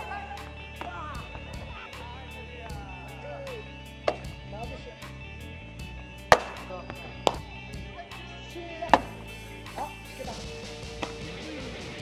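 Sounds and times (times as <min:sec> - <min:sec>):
baseball smacking into mitt: 0:06.3 - 0:07.4.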